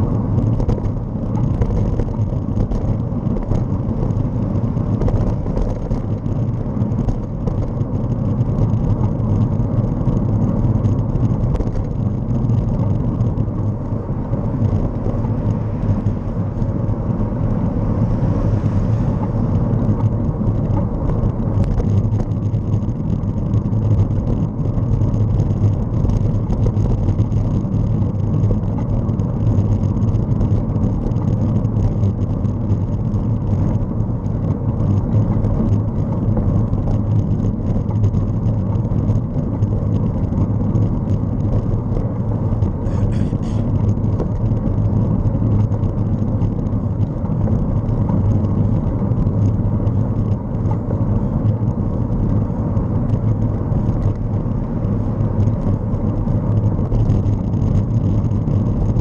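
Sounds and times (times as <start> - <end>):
wind and road noise: 0.0 - 59.0.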